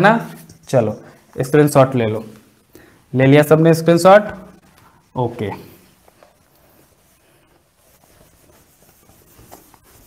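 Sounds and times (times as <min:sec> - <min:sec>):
duster rubbing whiteboard: 0:05.0 - 0:10.0.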